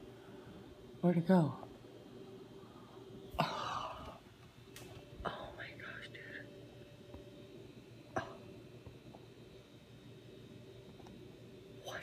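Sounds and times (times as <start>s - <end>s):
faint steady hum: 0.0s - 12.0s
person whispering: 5.3s - 6.5s, 11.8s - 12.0s.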